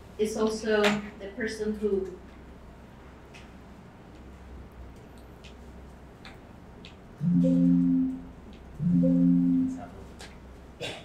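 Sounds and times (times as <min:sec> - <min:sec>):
steady low hum: 0:07.1 - 0:10.1.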